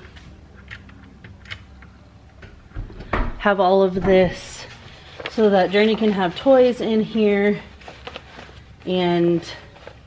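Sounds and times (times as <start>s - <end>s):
faint clicks and handling sounds: 0.0s - 2.5s
low steady hum: 0.0s - 10.0s.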